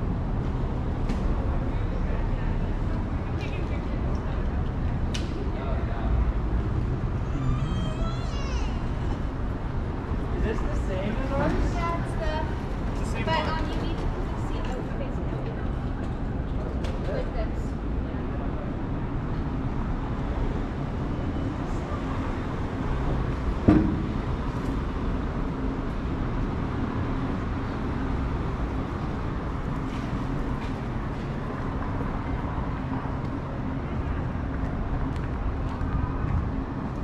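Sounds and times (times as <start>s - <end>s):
traffic hum: 0.0s - 37.0s
voices of passers-by: 0.0s - 37.0s.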